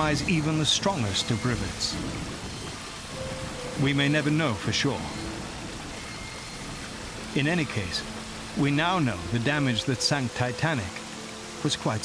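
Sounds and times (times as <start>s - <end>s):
water noise: 0.0s - 12.0s.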